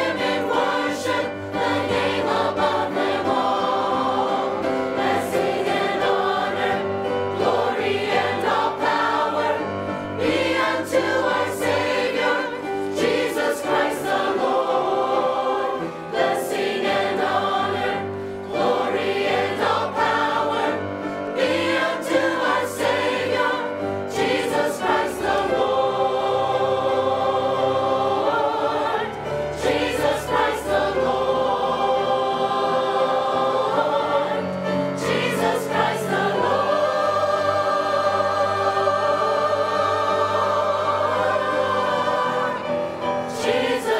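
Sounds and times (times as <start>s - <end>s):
church choir singing in parts: 0.0s - 43.9s.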